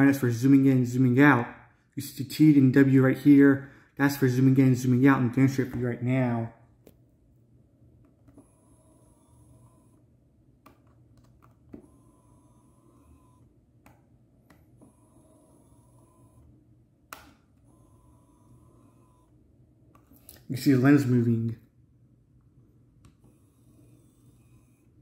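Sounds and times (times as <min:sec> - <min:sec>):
camera zoom motor whirring: 0:08.3 - 0:10.1, 0:11.7 - 0:13.5, 0:14.7 - 0:16.6, 0:17.6 - 0:19.4, 0:23.1 - 0:25.0.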